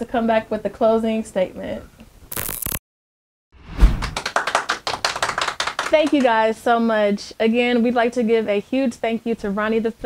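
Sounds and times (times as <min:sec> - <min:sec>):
hands clapping: 0:04.0 - 0:06.3.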